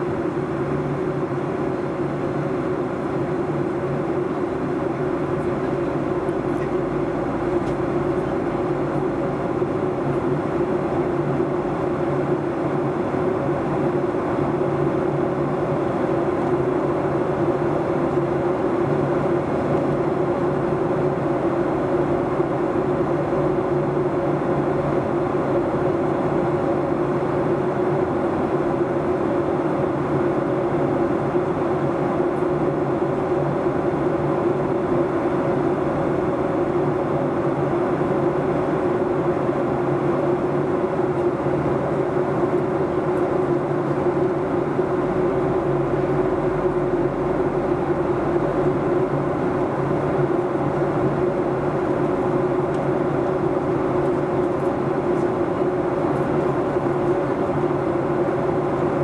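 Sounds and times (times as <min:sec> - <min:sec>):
jet engines humming: 0:00.0 - 0:59.0.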